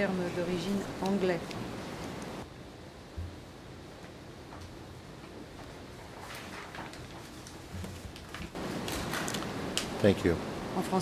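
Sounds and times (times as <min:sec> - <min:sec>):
faint steady hiss: 0:00.0 - 0:11.0.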